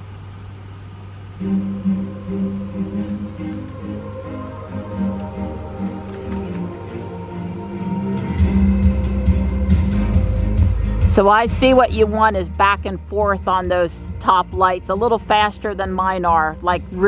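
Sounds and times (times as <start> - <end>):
electronic music from car speakers: 0.0 - 17.0
heavy bass: 0.0 - 17.0.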